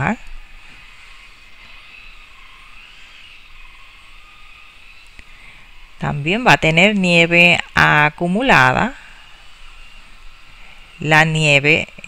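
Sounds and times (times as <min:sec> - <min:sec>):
faint background noise: 0:00.0 - 0:12.0
wavering high-pitched tone: 0:00.0 - 0:12.0.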